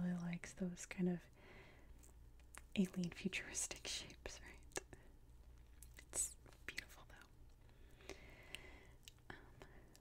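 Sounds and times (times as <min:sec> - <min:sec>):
soft whispery breath: 0:01.3 - 0:02.1, 0:06.7 - 0:10.0.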